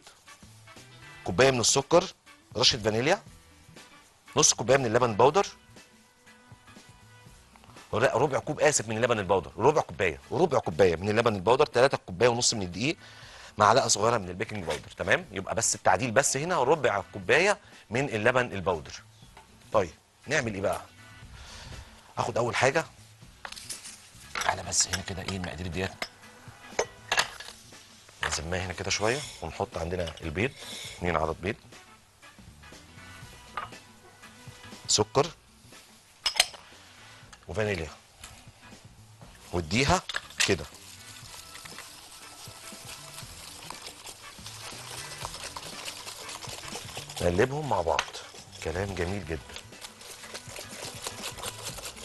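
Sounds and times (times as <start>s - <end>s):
faint background music: 0.0s - 52.0s
whisk clicking against glass bowl: 44.4s - 52.0s.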